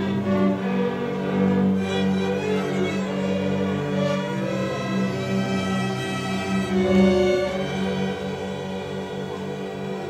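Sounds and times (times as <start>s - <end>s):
string orchestra playing: 0.0s - 10.0s.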